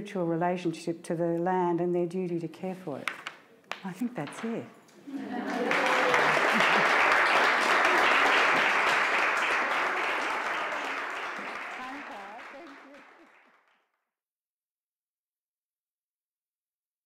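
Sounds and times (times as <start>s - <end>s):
audience applauding: 5.1s - 13.9s.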